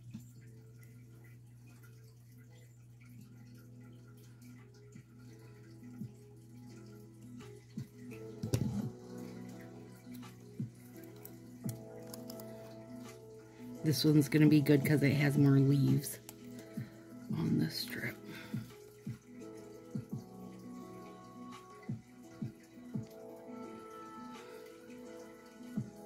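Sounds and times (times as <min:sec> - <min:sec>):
low steady hum: 0:00.0 - 0:25.9
soft background music: 0:00.0 - 0:26.0.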